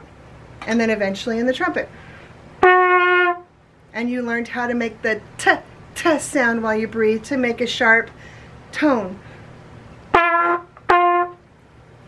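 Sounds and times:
trumpet short notes: 0:02.6 - 0:03.5, 0:10.1 - 0:11.4.

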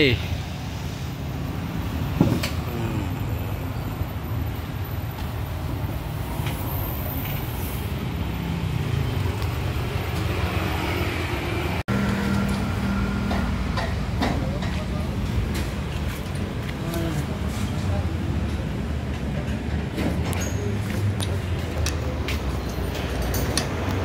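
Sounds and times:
road traffic rumble: 0:00.0 - 0:24.0.

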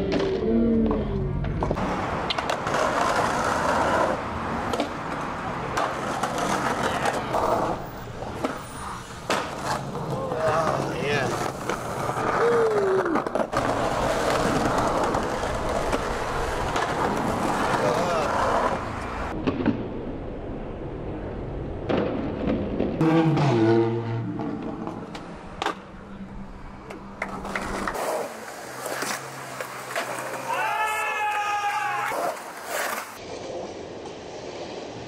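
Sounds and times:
skateboard popping and landing: 0:00.0 - 0:19.9, 0:24.4 - 0:26.0, 0:26.8 - 0:30.5
skateboard wheels rolling on concrete: 0:00.0 - 0:35.0.

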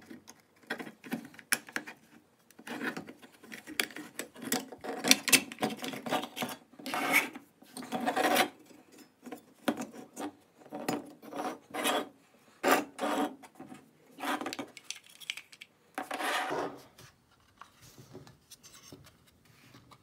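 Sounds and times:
metal parts scraping and rubbing: 0:14.2 - 0:16.9.

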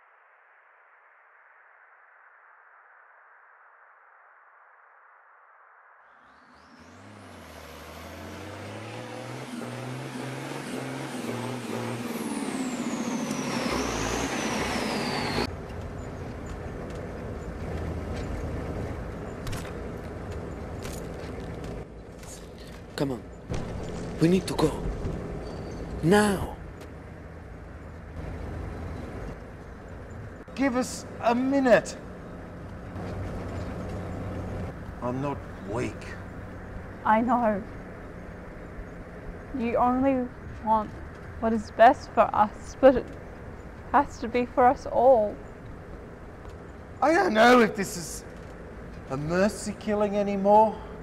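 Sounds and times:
deep engine-like rumble: 0:09.4 - 0:51.0.

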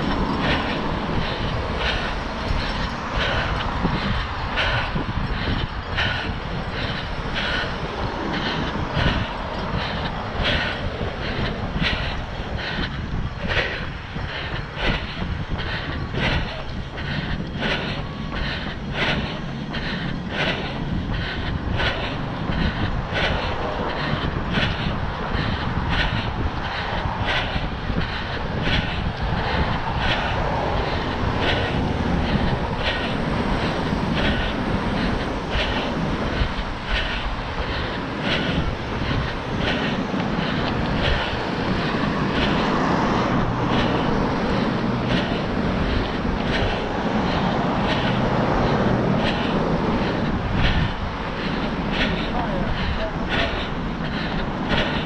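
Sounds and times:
road traffic: 0:00.0 - 0:55.0
running footsteps on concrete: 0:00.0 - 0:55.0
wind on microphone: 0:00.0 - 0:55.0.

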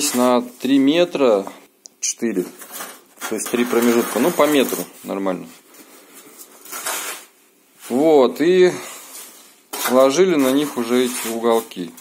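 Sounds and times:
rasping scrape: 0:06.4 - 0:07.3, 0:09.7 - 0:12.0
sand scraping and rustling: 0:09.1 - 0:11.9.

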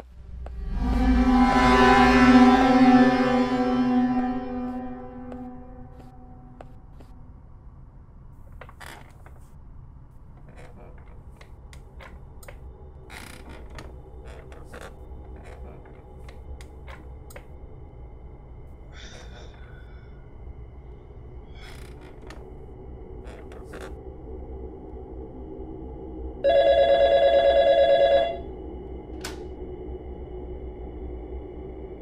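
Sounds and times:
office chair creaking: 0:08.5 - 0:09.6, 0:10.2 - 0:17.5, 0:21.6 - 0:22.6, 0:23.2 - 0:24.0
telephone ringing: 0:26.4 - 0:28.4.

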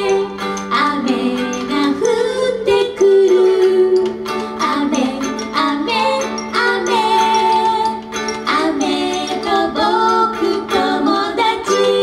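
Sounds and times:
ukulele and band accompaniment: 0:00.0 - 0:12.0
women singing together: 0:00.0 - 0:12.0.

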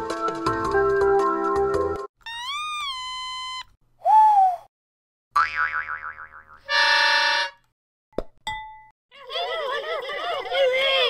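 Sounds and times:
cartoon held tone: 0:02.3 - 0:04.6.

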